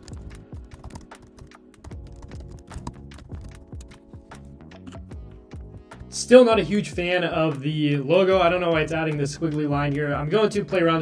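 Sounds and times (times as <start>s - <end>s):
fast typing on keyboard: 0.0s - 4.2s
background music: 0.0s - 11.0s.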